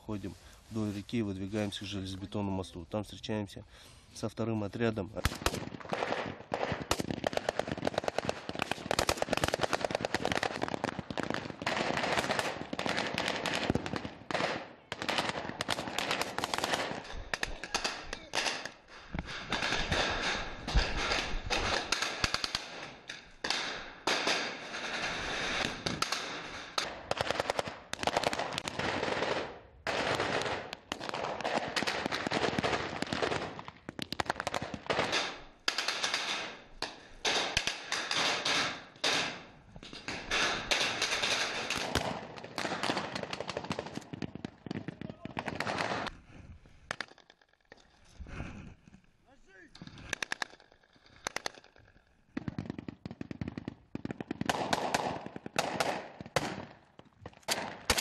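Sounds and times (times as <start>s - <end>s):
rapid automatic gunfire: 5.3s - 13.6s.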